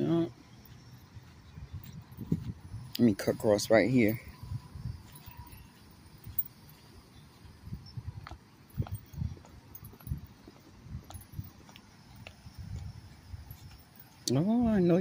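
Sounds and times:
footsteps on grass and dirt: 0.5 - 15.0.

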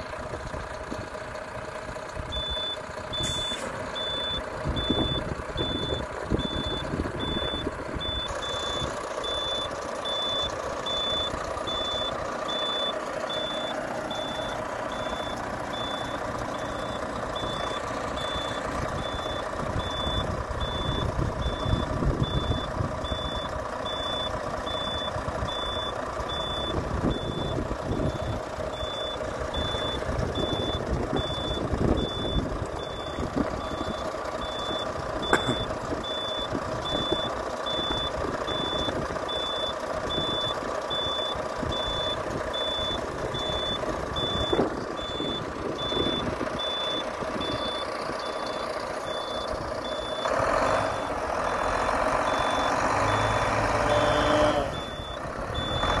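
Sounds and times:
diesel truck engine running: 0.0 - 56.0
engine and hydraulics whine: 0.0 - 56.0.

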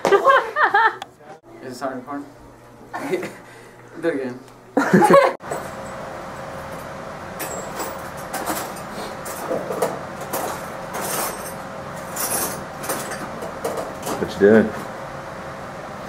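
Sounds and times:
steady background hum: 0.0 - 16.0.

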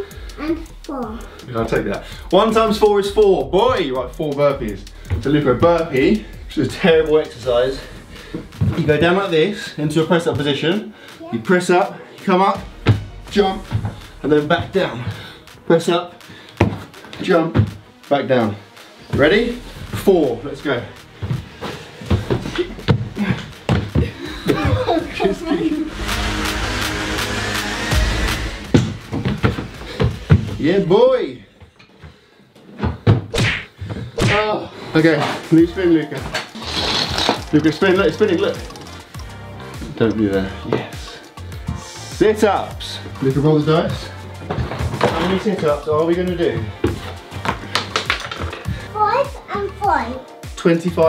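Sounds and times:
person breathing: 0.0 - 2.3, 4.8 - 5.2, 7.8 - 8.6, 10.9 - 11.3, 14.9 - 15.6, 16.2 - 17.1, 21.0 - 24.6, 48.6 - 49.1
background music: 0.0 - 51.0
person laughing: 24.0 - 25.8
dice rolling: 36.6 - 39.2.

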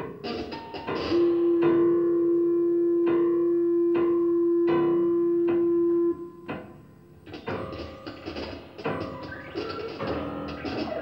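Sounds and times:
loud held keyboard tone: 0.0 - 11.0
plucked keyboard notes ringing: 0.0 - 11.0.

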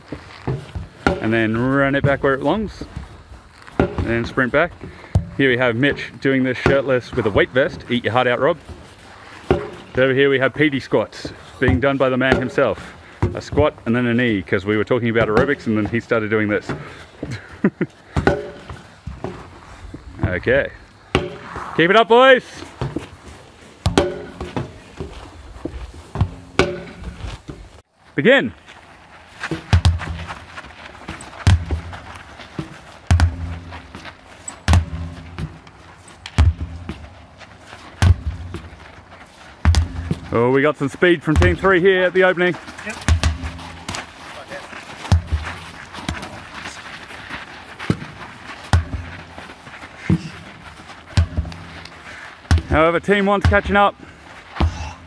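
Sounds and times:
sledgehammer thudding on tyre: 0.4 - 14.4, 18.1 - 21.9, 23.8 - 27.7, 29.4 - 37.2, 37.8 - 38.8, 39.6 - 40.5, 41.2 - 44.1, 45.0 - 46.4, 47.8 - 49.3, 51.1 - 55.0.

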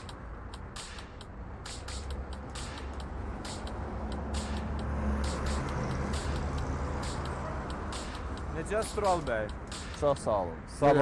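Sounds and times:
low steady traffic rumble: 0.0 - 11.0
vehicle engine droning past: 2.5 - 8.2.

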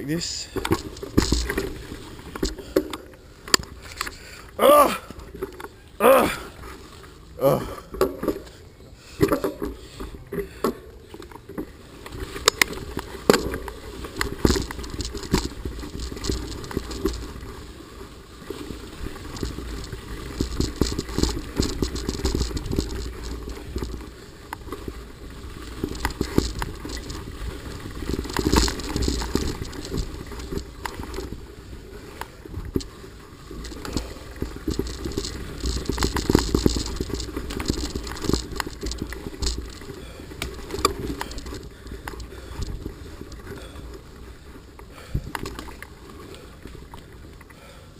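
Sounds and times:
bike rattling and knocking: 0.0 - 6.7, 7.4 - 17.8, 18.4 - 47.0
bike tyres crunching on dirt: 0.0 - 47.9
wind rumbling on microphone: 12.0 - 43.6.

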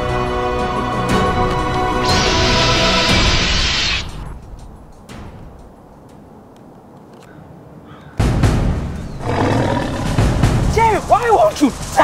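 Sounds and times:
music: 0.0 - 5.8, 8.2 - 12.0
dinosaur roar: 9.2 - 10.4.

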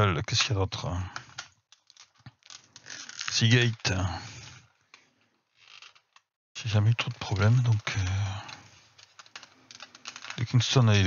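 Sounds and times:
man's drawn-out hesitation sound: 6.6 - 8.6.

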